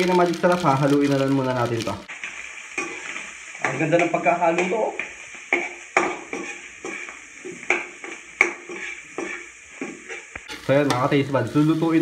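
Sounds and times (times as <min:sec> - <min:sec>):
frying sizzle: 0:00.0 - 0:12.0
metal ladle scraping a wok: 0:02.2 - 0:03.4, 0:05.5 - 0:11.1.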